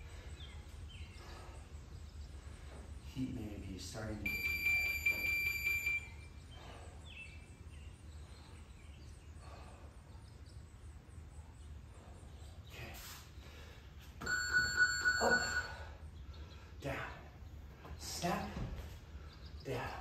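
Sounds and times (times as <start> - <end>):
faint low hum: 0.0 - 20.0
lower timer beep: 4.2 - 6.2, 14.2 - 15.8
long high timer beep: 4.3 - 6.1, 14.2 - 15.8.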